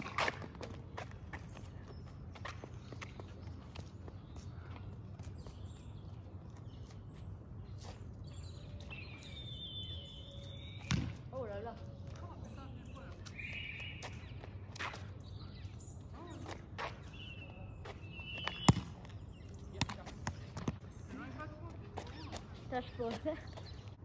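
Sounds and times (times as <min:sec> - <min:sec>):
ball bouncing on asphalt: 0:00.0 - 0:04.6, 0:10.7 - 0:12.4, 0:17.8 - 0:22.5
birds chirping: 0:00.0 - 0:24.0.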